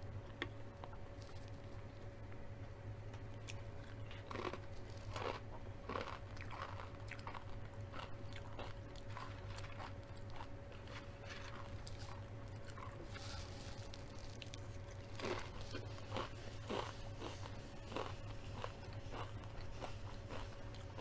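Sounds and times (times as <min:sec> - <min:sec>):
faint electrical hum: 0:00.0 - 0:21.0
crunching and chewing chips: 0:01.1 - 0:01.7, 0:03.2 - 0:21.0.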